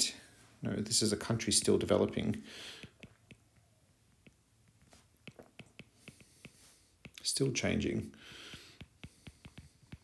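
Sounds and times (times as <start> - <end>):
stylus tapping on glass screen: 2.8 - 7.2, 8.5 - 10.0.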